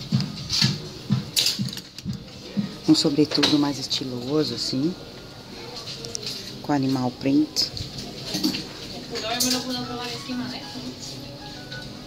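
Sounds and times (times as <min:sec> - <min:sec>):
shop music with beat: 0:00.0 - 0:12.0.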